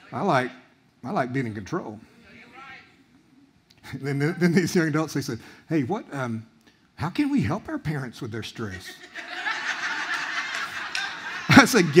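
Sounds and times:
audience laughing: 0:08.9 - 0:12.0.

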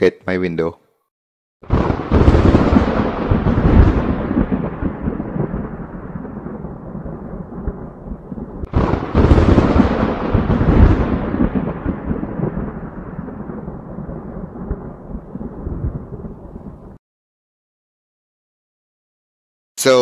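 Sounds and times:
thunderclaps rumbling: 0:01.6 - 0:17.0.

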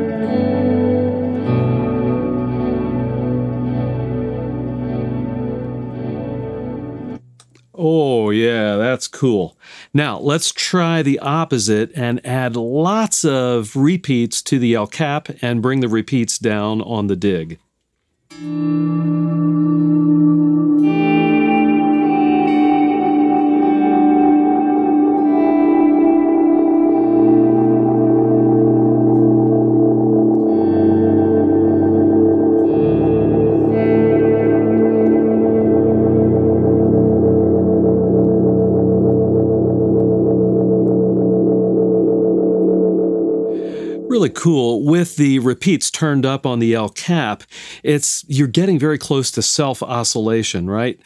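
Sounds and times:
electric guitar with delay echoes: 0:00.0 - 0:07.4, 0:18.3 - 0:44.9.

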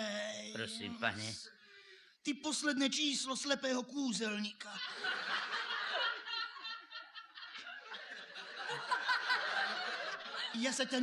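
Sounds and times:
audience laughing: 0:04.8 - 0:11.0.

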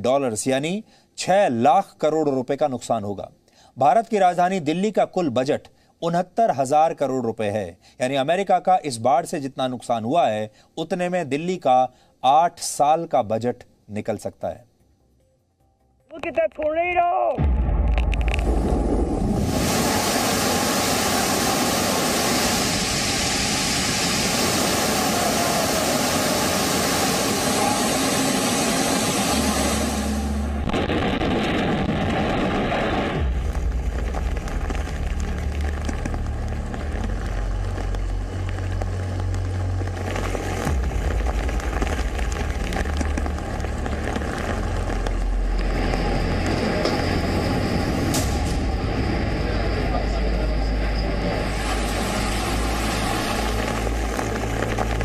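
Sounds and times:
heavy low rumble: 0:17.4 - 0:55.0
floodwater gushing: 0:18.2 - 0:30.5, 0:33.2 - 0:48.3, 0:51.2 - 0:55.0.

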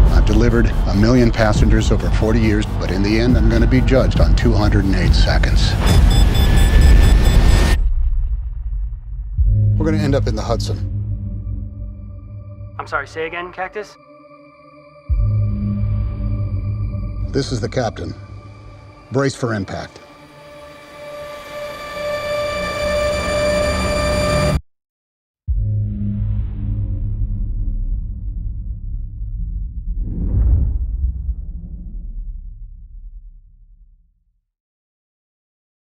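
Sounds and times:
deep rumble: 0:00.0 - 0:12.8, 0:25.5 - 0:34.1.

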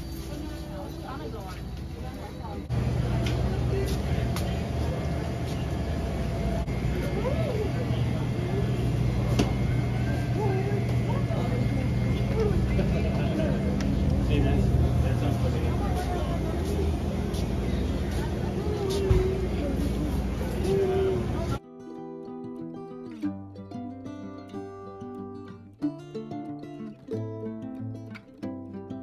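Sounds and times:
low machine hum: 0:00.0 - 0:21.6
people talking indistinctly: 0:00.0 - 0:21.6.

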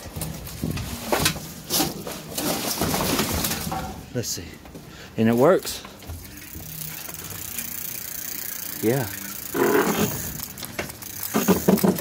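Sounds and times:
bicycle chain and freewheel running: 0:05.2 - 0:12.0.

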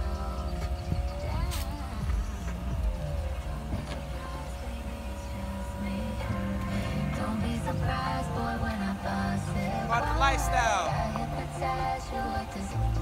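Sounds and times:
motor whine: 0:00.0 - 0:13.0
music playing: 0:00.0 - 0:13.0.

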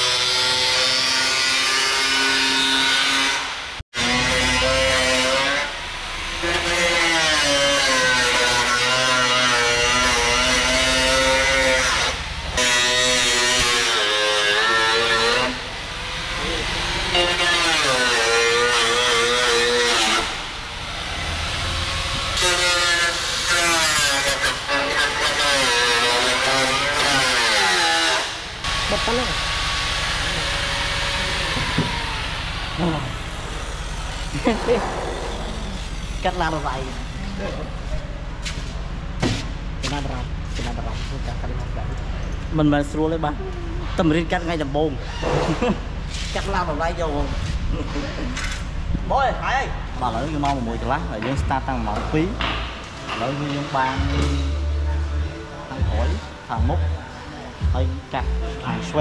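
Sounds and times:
angle grinder cutting metal: 0:00.0 - 0:37.5.

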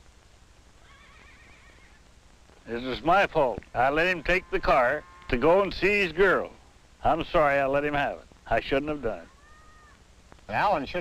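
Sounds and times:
faint hiss: 0:00.0 - 0:11.0
faint high animal call: 0:00.8 - 0:02.0, 0:03.9 - 0:06.4, 0:09.1 - 0:10.0.

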